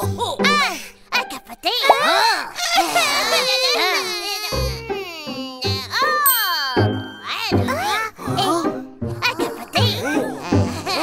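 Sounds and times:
background music: 0.0s - 11.0s
cartoon character crying and wailing: 1.7s - 8.7s.

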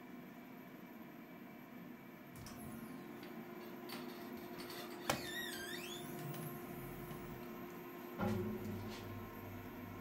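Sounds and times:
printer machine hum: 5.9s - 10.0s.

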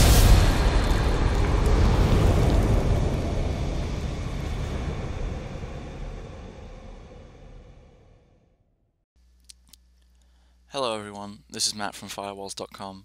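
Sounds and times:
deep rumbling boom: 0.0s - 8.8s.

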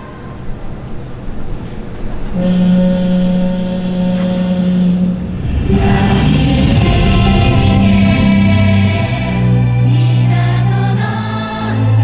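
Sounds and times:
ship's horn blast: 2.2s - 12.0s
dance music: 5.2s - 11.4s.

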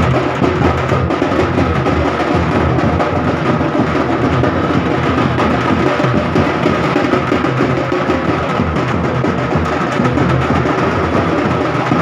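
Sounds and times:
deep drum beats: 0.0s - 12.0s
wooden-sounding drum strokes: 0.0s - 12.0s.

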